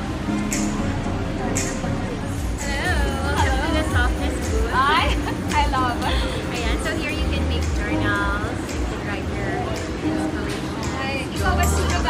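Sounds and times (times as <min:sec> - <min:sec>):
soft background music: 0:00.0 - 0:12.0
steady low rumble: 0:00.0 - 0:12.0
women talking: 0:02.6 - 0:12.0.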